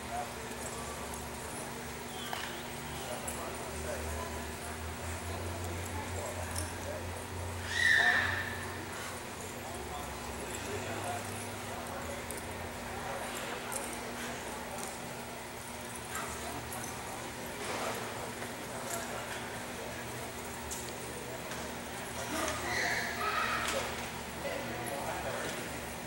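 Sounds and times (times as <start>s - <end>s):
high-pitched animal call: 7.6s - 8.6s.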